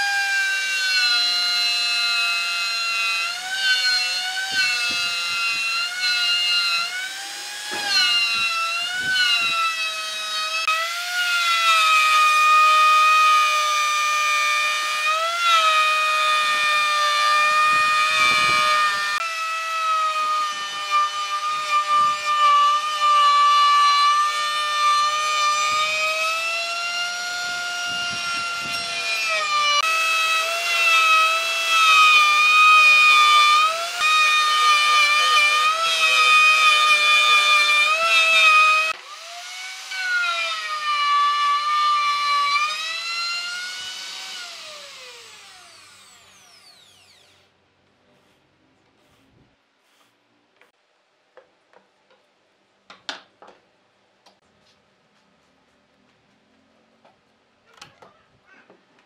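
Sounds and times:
router motor whine cutting wood: 0.0s - 47.5s.

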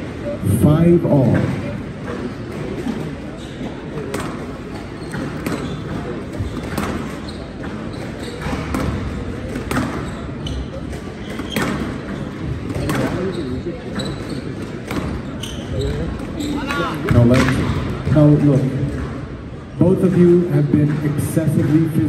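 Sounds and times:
shoes squeaking on floor: 1.1s - 17.3s
squash ball struck by racket: 1.2s - 13.3s, 14.1s - 16.0s.

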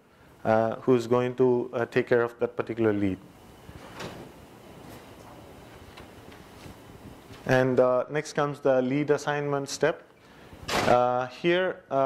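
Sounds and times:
man speaking: 0.4s - 3.2s, 7.5s - 10.1s, 10.8s - 12.0s.

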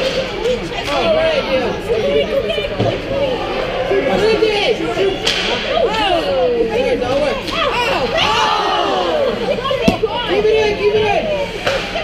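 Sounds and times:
people shouting and calling: 0.5s - 12.0s.

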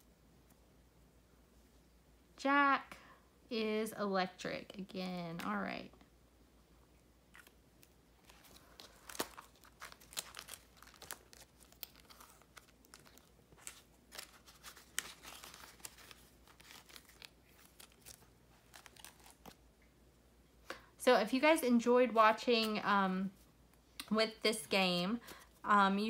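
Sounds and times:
paper rustling and crinkling: 7.3s - 19.6s.

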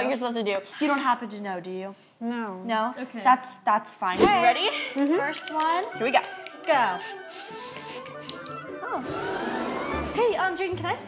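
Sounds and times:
aerosol spray hissing: 7.0s - 8.5s, 9.8s - 10.5s.

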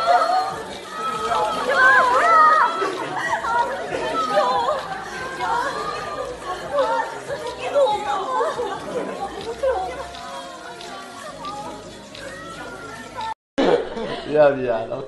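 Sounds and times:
voices chattering: 0.0s - 13.4s.

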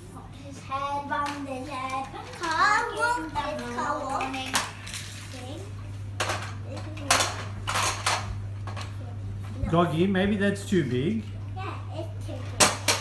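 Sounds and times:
child's voice: 0.0s - 5.8s, 6.6s - 7.4s, 11.5s - 12.9s
plastic toys clattering: 1.2s - 5.6s, 6.2s - 8.9s, 12.4s - 13.0s.

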